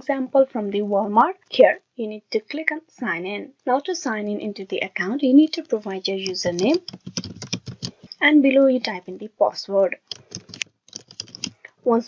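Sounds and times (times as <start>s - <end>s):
keyboard key clicks: 6.2s - 8.2s, 10.0s - 11.5s.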